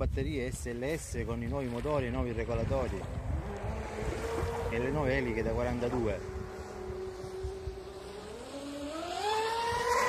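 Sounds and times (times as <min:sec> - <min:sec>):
electric boat motors whining: 0:02.6 - 0:10.0.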